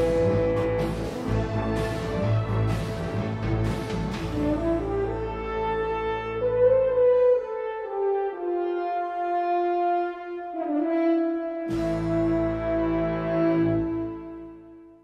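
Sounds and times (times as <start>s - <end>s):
low bass: 0.0s - 7.2s, 11.7s - 14.6s
slow horn melody: 0.0s - 15.0s.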